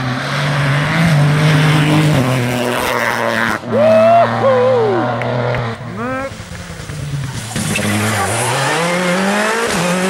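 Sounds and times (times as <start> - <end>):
another car engine: 0.0 - 10.0
rally car engine revving: 0.0 - 10.0.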